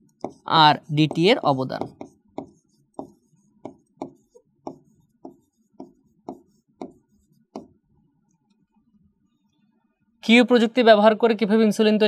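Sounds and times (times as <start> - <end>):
pen tapping on writing board: 0.2 - 7.8.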